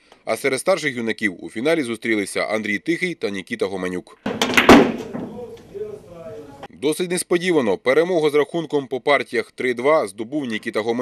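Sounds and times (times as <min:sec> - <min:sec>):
billiard balls clacking: 0:04.3 - 0:06.1.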